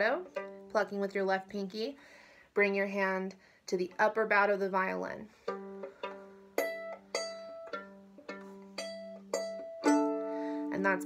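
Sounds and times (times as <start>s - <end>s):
plucked violin notes: 0.0s - 1.1s, 5.3s - 11.0s.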